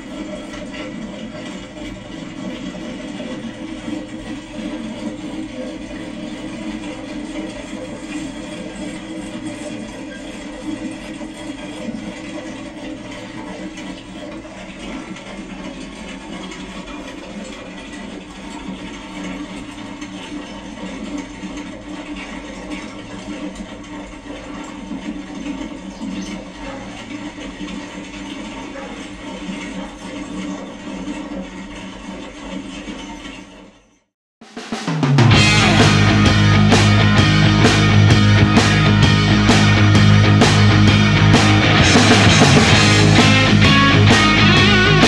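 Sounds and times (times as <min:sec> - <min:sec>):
dense rushing television noise: 0:00.0 - 0:33.4, 0:35.2 - 0:45.0.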